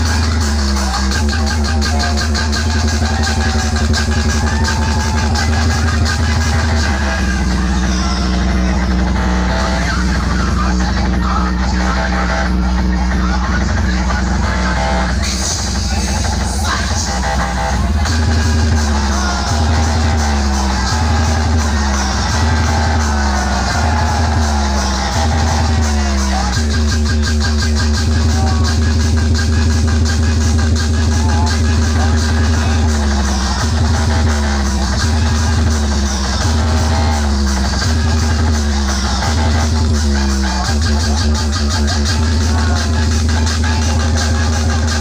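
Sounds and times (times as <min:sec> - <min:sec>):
electronic dance music heavy bass: 0:00.0 - 0:45.0.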